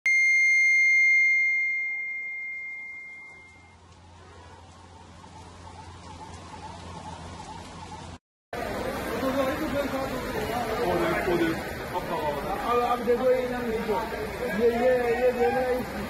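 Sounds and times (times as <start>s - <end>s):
bright chime ringing: 0.1s - 3.8s.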